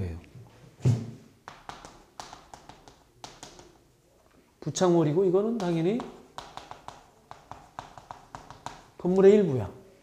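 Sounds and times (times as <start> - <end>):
chalk tapping on chalkboard: 1.4 - 3.8, 5.2 - 9.2.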